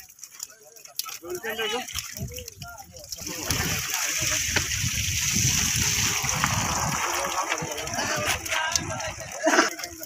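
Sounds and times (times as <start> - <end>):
people talking: 0.0 - 10.0
water splashing and sloshing: 0.0 - 10.0.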